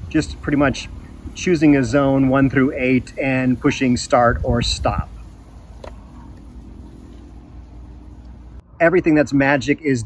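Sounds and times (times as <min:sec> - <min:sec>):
low background rumble: 0:00.0 - 0:08.8.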